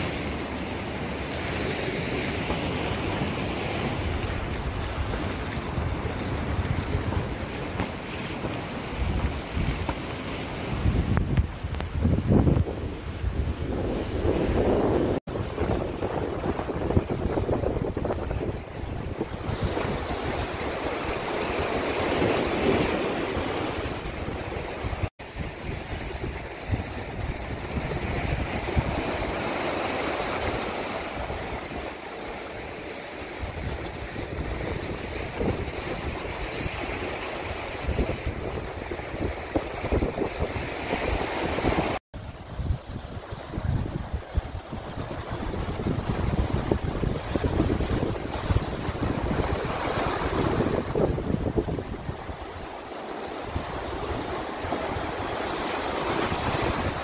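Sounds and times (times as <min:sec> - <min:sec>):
wind buffeting microphone: 0:00.0 - 0:31.9, 0:33.3 - 0:57.0
surf washing against rocks: 0:00.0 - 0:57.0.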